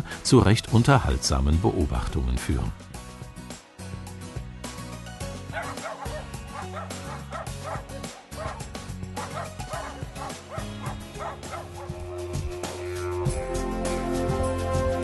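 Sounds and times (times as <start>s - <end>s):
background music: 0.0s - 15.0s
dog barking: 5.5s - 12.0s.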